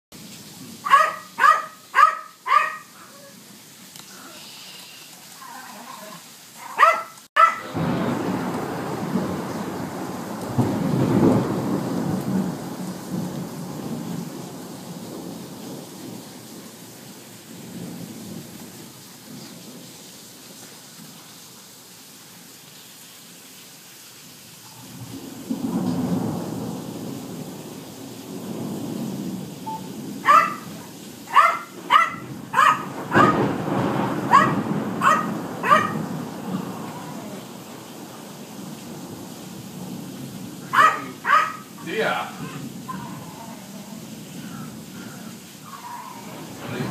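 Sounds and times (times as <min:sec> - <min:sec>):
steady rain: 0:00.1 - 0:46.9
dog barking: 0:00.8 - 0:03.3, 0:06.6 - 0:07.8, 0:30.2 - 0:33.6, 0:34.2 - 0:36.1, 0:40.7 - 0:41.8
thunder rolling: 0:07.4 - 0:19.8, 0:24.7 - 0:46.9.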